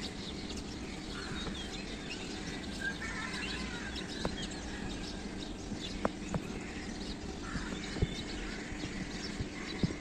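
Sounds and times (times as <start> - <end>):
outdoor background noise: 0.0 - 10.0
small birds chirping: 0.0 - 10.0.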